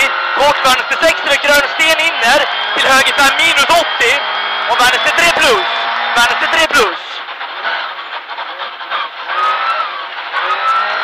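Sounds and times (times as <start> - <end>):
car engine accelerating: 0.0 - 11.0
tyres on gravel road: 0.0 - 11.0.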